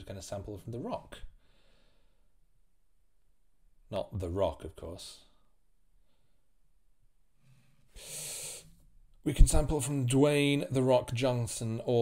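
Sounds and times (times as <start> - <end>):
man breathing in: 1.4 - 2.4, 7.4 - 8.8.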